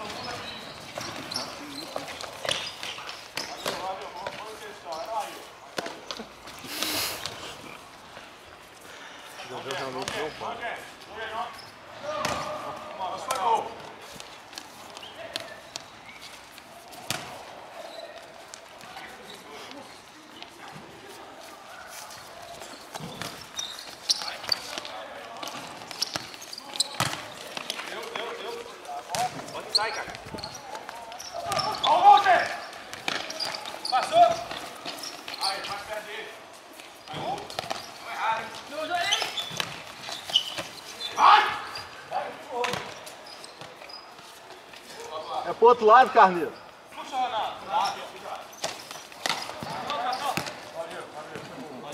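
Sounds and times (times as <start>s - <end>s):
players' voices: 0.0s - 51.9s
ball kicked and bouncing: 12.2s - 12.6s, 17.0s - 17.4s, 48.6s - 50.6s.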